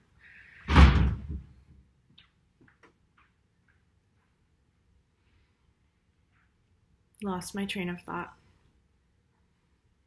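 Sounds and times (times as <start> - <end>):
heavy thump: 0.6 - 1.6.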